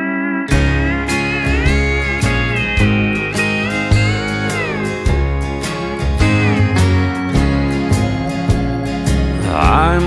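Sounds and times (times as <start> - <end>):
steel guitar sliding melody: 0.0 - 10.0
country band playing: 0.5 - 10.0.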